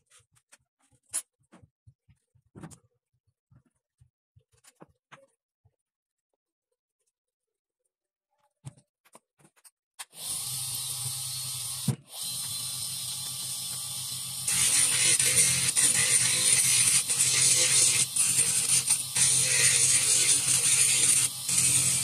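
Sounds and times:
small electric motor humming: 0:10.2 - 0:22.0
bur grinding workpiece: 0:14.4 - 0:22.0.

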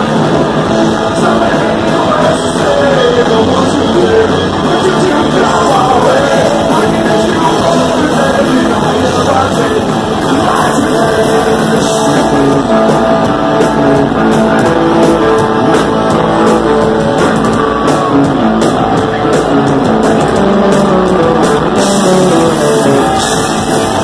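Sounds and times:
live punk rock band: 0:00.0 - 0:24.0.

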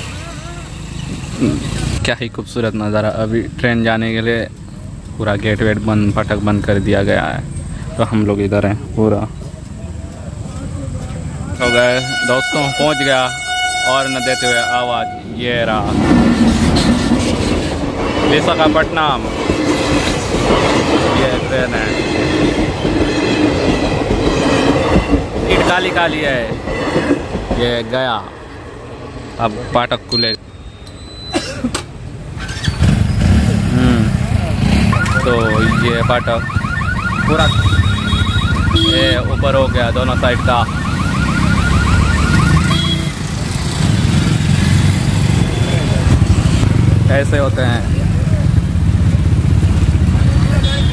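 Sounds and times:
train wheels rumbling on rails: 0:00.0 - 0:30.0
rapid electronic chirp: 0:34.9 - 0:43.0
motorcycle engines running slowly: 0:42.9 - 0:50.8.

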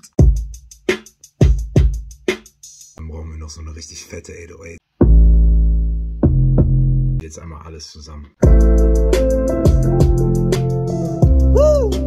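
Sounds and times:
deep sub-bass notes: 0:05.0 - 0:07.2, 0:08.4 - 0:12.0.

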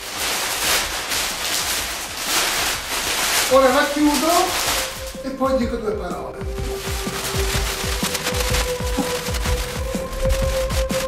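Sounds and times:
plastic sheet crinkling and rustling: 0:00.0 - 0:11.0.

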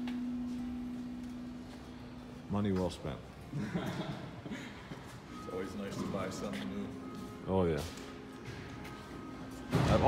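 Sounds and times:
steady low hum: 0:00.0 - 0:07.5.

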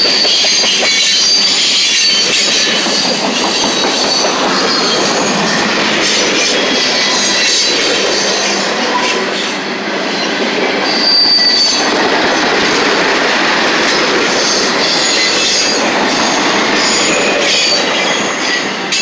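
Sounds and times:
high-pitched wheel squeals: 0:00.0 - 0:12.0, 0:14.0 - 0:19.0
train wheels rolling over rail joints: 0:00.0 - 0:19.0.

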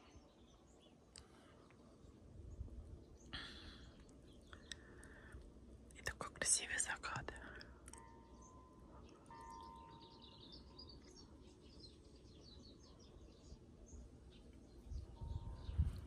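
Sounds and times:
birds chirping faintly: 0:00.0 - 0:16.0
soft steady ringing tone: 0:07.4 - 0:11.8, 0:15.0 - 0:16.0.

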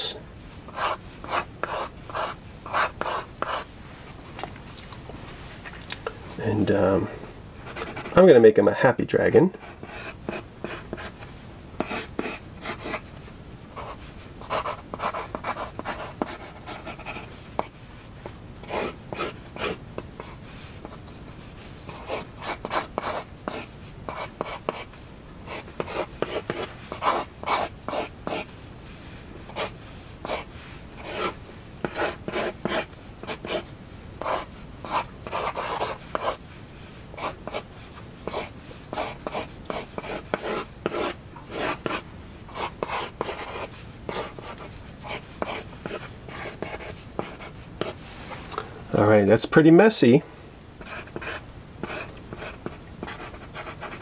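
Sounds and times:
pencil scratching on paper: 0:00.7 - 0:03.7, 0:07.7 - 0:08.2, 0:09.6 - 0:13.1, 0:13.8 - 0:17.8, 0:18.6 - 0:21.0, 0:21.6 - 0:24.9, 0:25.5 - 0:28.5, 0:29.5 - 0:36.5, 0:37.2 - 0:48.0, 0:50.8 - 0:54.0.

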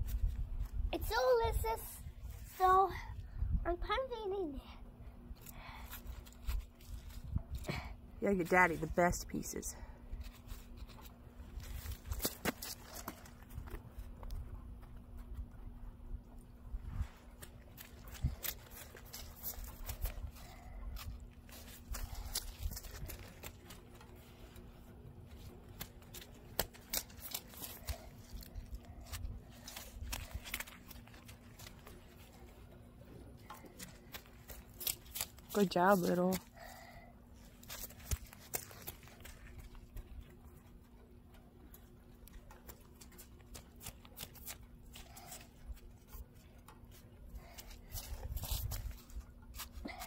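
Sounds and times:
faint steady hum: 0:00.0 - 0:50.0.

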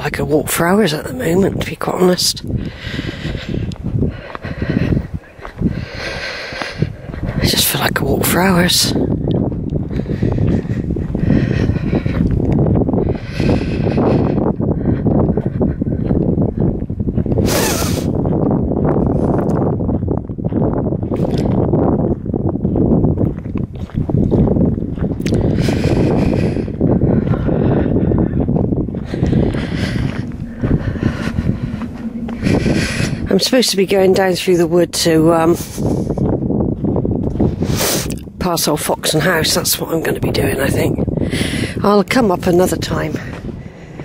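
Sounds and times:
wind rumbling on microphone: 0:00.0 - 0:44.0
person breathing out hard: 0:02.5 - 0:07.4, 0:09.9 - 0:12.4, 0:13.0 - 0:16.0, 0:17.4 - 0:18.2, 0:25.3 - 0:33.3, 0:41.2 - 0:41.8.

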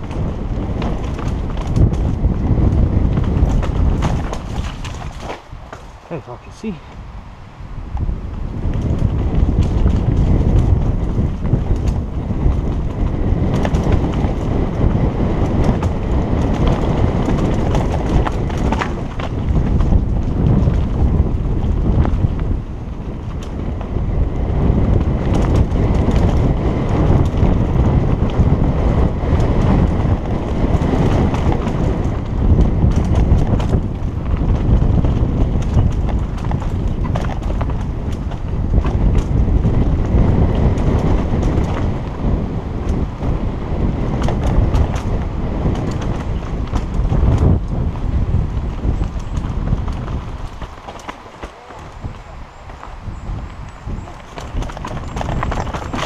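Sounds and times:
bike chain and frame clattering: 0:00.0 - 0:06.0, 0:44.1 - 0:56.0
tyres on dirt: 0:00.0 - 0:07.1, 0:08.0 - 0:56.0
wind on camera microphone: 0:00.0 - 0:56.0.

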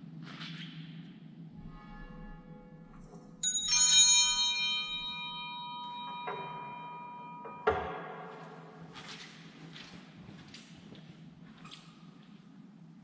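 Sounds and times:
small church bell ringing: 0:03.4 - 0:08.9
steady low hum: 0:04.4 - 0:13.0.

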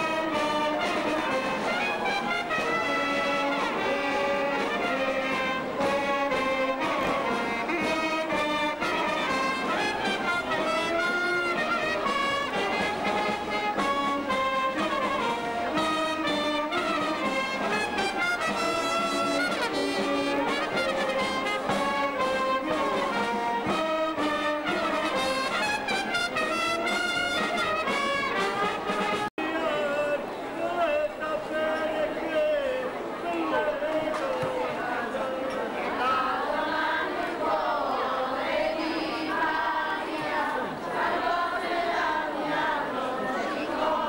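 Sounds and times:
marching brass band playing: 0:00.0 - 0:44.0.

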